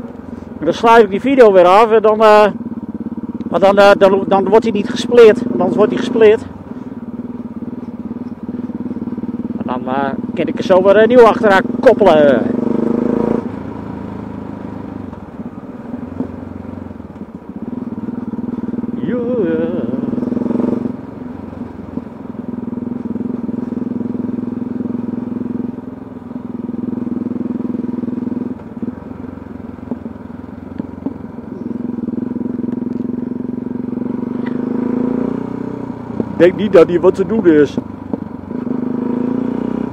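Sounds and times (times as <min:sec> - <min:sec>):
motorcycle engine running: 0:00.0 - 0:39.9.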